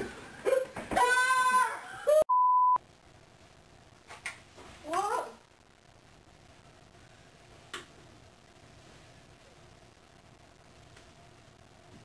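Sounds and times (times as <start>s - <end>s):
rising vocal cry: 0.9s - 2.2s.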